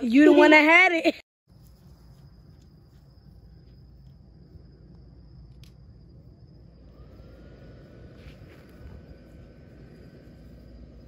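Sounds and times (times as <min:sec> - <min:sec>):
crickets trilling: 0:00.0 - 0:11.0
low rumble: 0:03.1 - 0:11.0
faint rising tone: 0:06.0 - 0:11.0.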